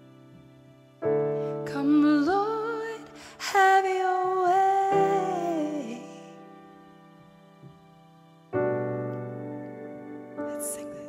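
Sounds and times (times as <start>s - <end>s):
soft piano chords: 0.0s - 11.0s
woman singing: 1.6s - 6.5s, 10.5s - 11.0s.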